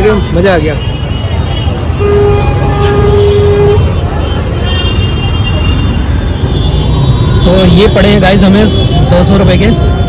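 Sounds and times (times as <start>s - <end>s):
crowd voices: 0.0s - 10.0s
rumble of engines: 0.0s - 10.0s
vehicle horn: 1.0s - 9.1s.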